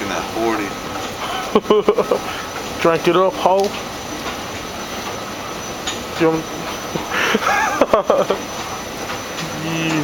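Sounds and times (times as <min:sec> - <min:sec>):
escalator mechanical hum: 0:00.0 - 0:10.0
man speaking: 0:09.4 - 0:10.0.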